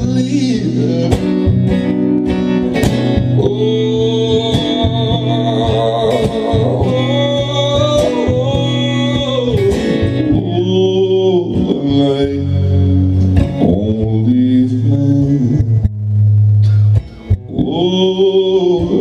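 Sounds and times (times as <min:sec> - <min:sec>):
strummed acoustic guitar: 0:00.0 - 0:19.0.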